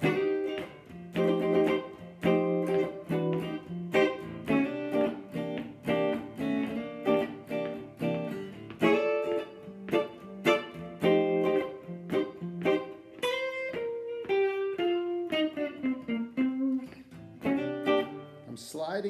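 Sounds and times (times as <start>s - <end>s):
guitar single-note run: 0.0s - 18.5s
blues guitar chords: 0.0s - 19.0s.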